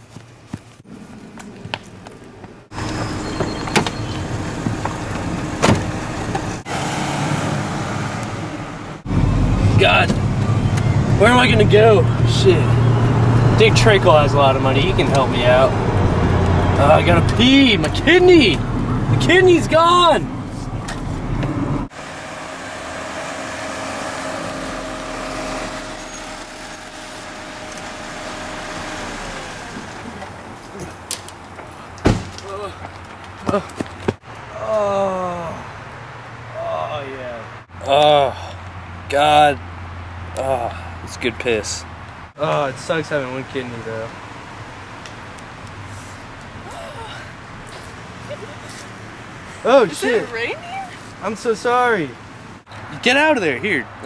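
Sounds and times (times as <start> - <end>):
car engine and road rumble: 0.0 - 54.0
outdoor traffic noise: 0.0 - 54.0
car door slamming: 4.6 - 6.5, 32.0 - 32.4
shrill high squeal: 24.5 - 27.7.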